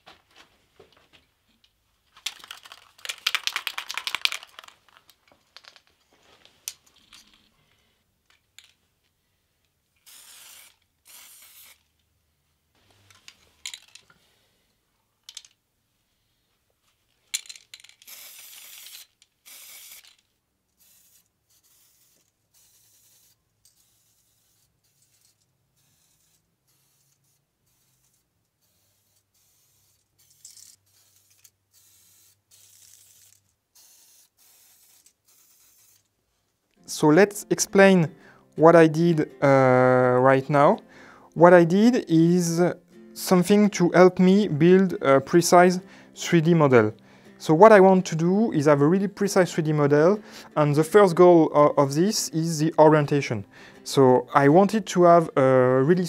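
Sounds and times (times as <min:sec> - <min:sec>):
spray paint hissing: 0:10.0 - 0:11.8, 0:17.4 - 0:20.2, 0:20.8 - 0:36.1.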